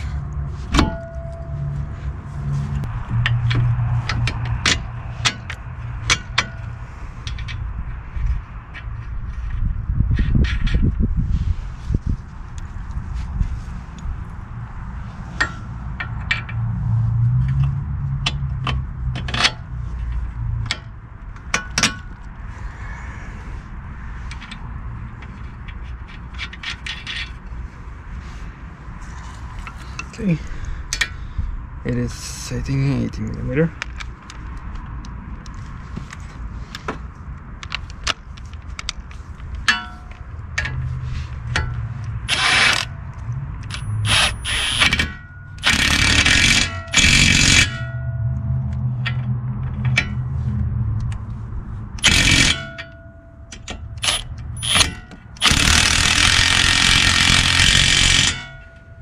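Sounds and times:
low rumble: 0:00.0 - 0:19.1, 0:47.8 - 0:52.1
metallic clicks of tools: 0:02.8 - 0:07.6, 0:41.5 - 0:48.0, 0:51.0 - 0:58.9.

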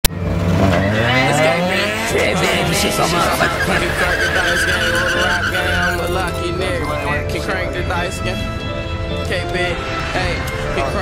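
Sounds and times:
car engine accelerating: 0:00.1 - 0:06.8.

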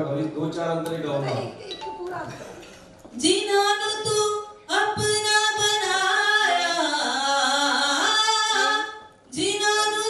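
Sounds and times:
woman singing unaccompanied: 0:03.2 - 0:10.0.

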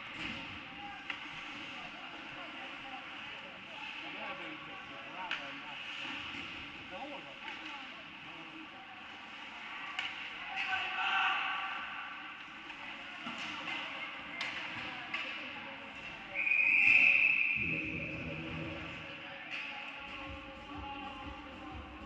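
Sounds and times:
hockey sticks and puck clacking: 0:00.1 - 0:01.7, 0:09.8 - 0:15.6.

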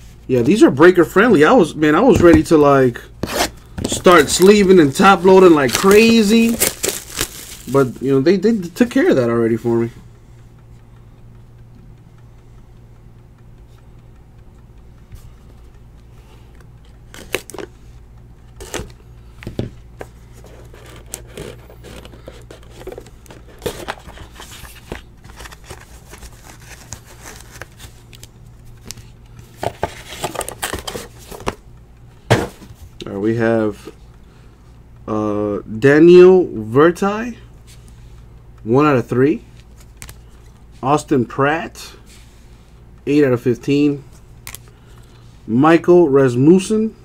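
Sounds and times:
low room hum: 0:00.0 - 0:47.0
wrapper crinkling and tearing: 0:04.0 - 0:08.0, 0:20.6 - 0:28.3, 0:29.8 - 0:31.5.

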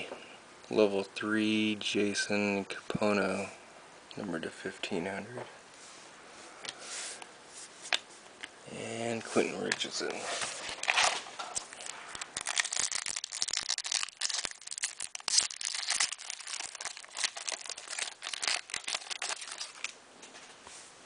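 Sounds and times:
foil wrapper tearing and crinkling: 0:10.6 - 0:20.0.

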